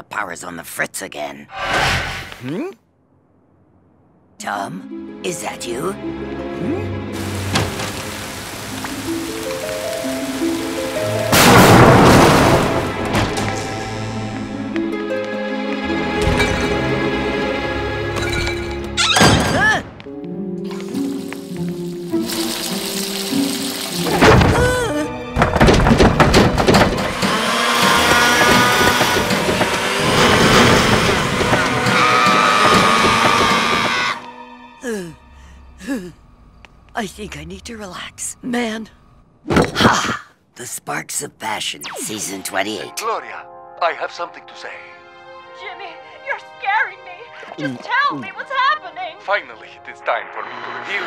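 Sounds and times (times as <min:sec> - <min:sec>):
suspenseful background music: 0:04.5 - 0:39.4, 0:41.8 - 0:51.0
steady rain: 0:07.2 - 0:13.0, 0:20.8 - 0:24.9
clattering knocks: 0:25.3 - 0:34.2
blender whirring: 0:27.2 - 0:34.1.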